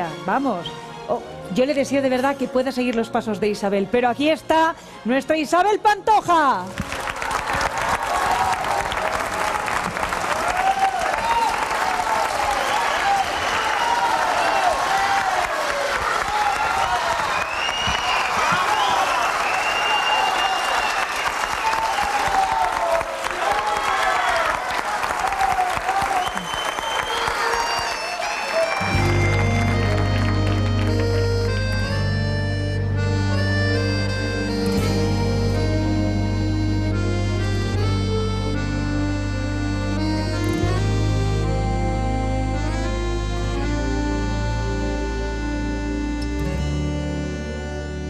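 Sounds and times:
audience applauding: 6.7 - 32.2
band playing instrumental intro: 27.0 - 48.0.

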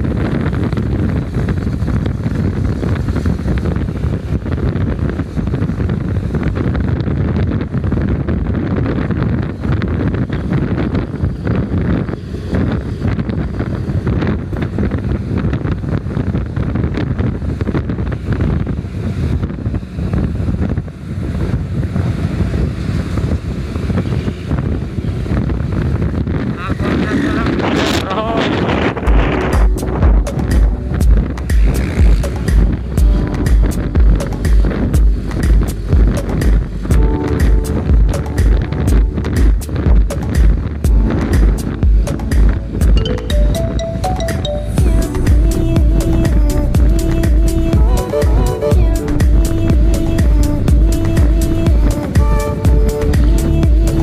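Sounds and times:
road and vehicle noise: 0.0 - 54.0
wind buffeting microphone: 0.0 - 54.0
music with heavy bass beat: 29.0 - 54.0.

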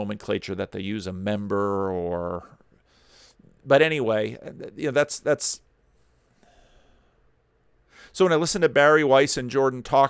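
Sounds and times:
faint breath at microphone: 5.8 - 7.2.

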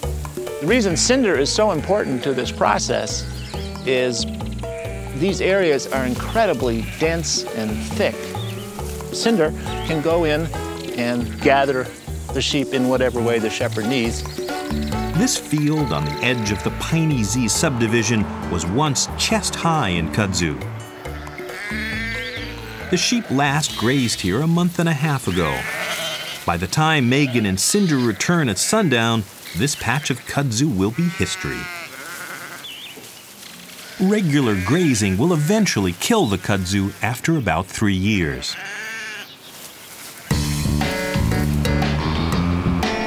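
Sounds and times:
background music: 0.0 - 31.5, 40.3 - 43.0
sheep bleating: 0.9 - 12.0, 12.6 - 18.5, 19.4 - 24.4, 25.2 - 32.8, 33.7 - 37.4, 38.2 - 39.4, 40.0 - 41.6.

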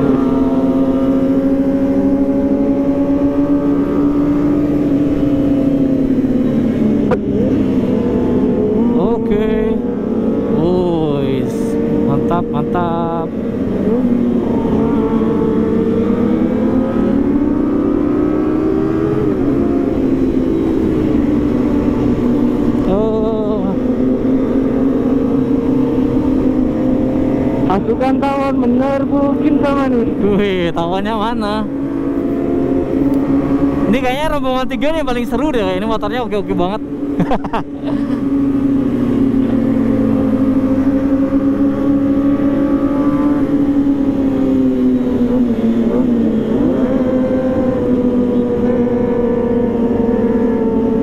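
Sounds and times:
motorcycle engine running: 0.0 - 51.0
wind and road rumble: 0.0 - 51.0.

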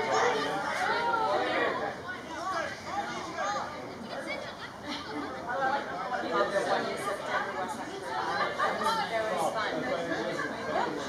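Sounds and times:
sideline chatter: 0.0 - 11.0.

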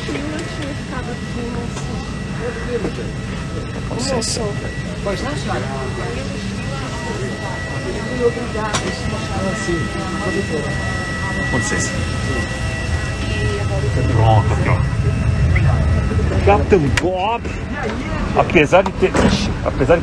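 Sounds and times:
aircraft systems hum: 0.0 - 20.0
passengers talking: 0.0 - 20.0
thin high whine: 0.1 - 18.2.

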